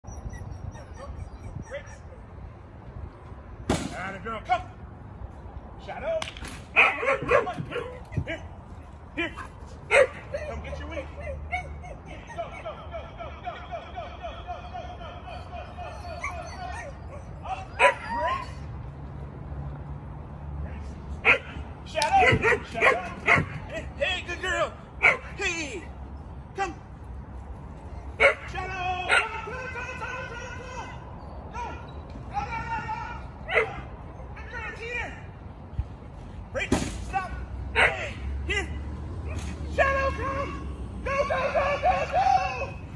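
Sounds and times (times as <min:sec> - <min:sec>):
dog whining and yipping: 0:00.0 - 0:02.5, 0:09.4 - 0:12.8, 0:15.3 - 0:18.7
dog barking: 0:06.8 - 0:07.9, 0:09.9 - 0:10.2, 0:21.2 - 0:21.6, 0:22.2 - 0:23.6, 0:25.0 - 0:25.3, 0:28.2 - 0:28.4.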